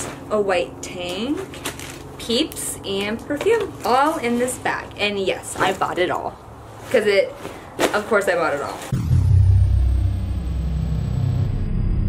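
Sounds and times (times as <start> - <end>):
deep low rumbling drone: 8.9 - 12.0.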